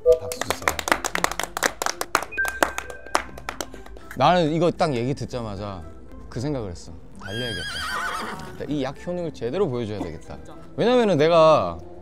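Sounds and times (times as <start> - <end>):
small group clapping: 0.0 - 4.2
quiet background music: 0.0 - 12.0.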